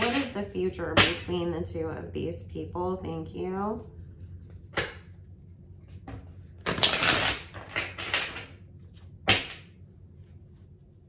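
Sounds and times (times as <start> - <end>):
cards slapped on table: 4.8 - 5.0.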